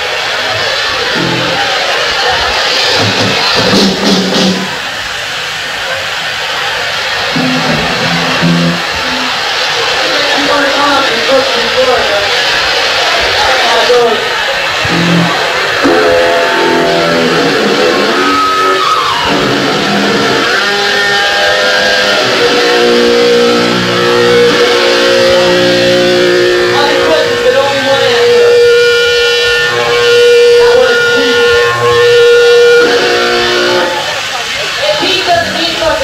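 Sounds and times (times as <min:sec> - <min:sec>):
distorted electric guitar chords: 0:01.0 - 0:05.6, 0:07.0 - 0:36.0
punk band playing live: 0:01.1 - 0:05.1, 0:07.3 - 0:10.9, 0:14.8 - 0:34.3.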